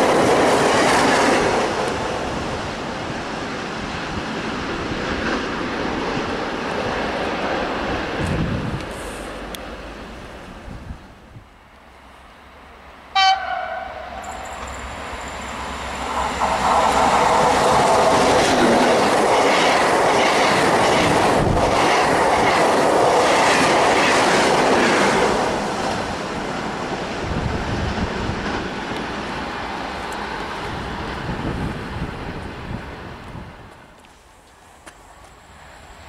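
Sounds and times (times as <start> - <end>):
clickety-clack over rail joints: 0.0 - 2.6, 14.2 - 35.4
train wheels rumbling: 0.0 - 36.0
train horn blast: 13.1 - 14.4.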